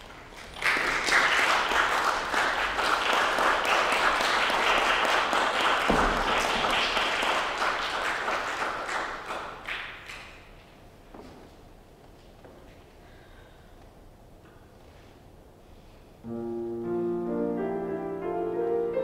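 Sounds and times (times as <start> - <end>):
audience applauding: 0.0 - 10.4.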